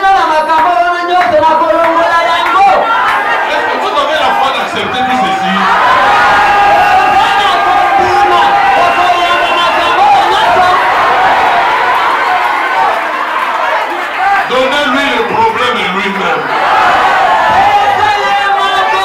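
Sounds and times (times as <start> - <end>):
man speaking through loudspeakers: 0.0 - 6.0, 7.0 - 11.1, 14.1 - 16.6, 17.5 - 19.0
congregation praying aloud: 0.0 - 19.0.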